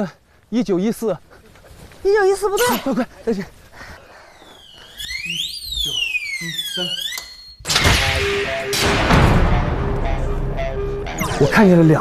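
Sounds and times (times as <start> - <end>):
electronic alarm wailing: 4.3 - 9.0, 10.0 - 12.0.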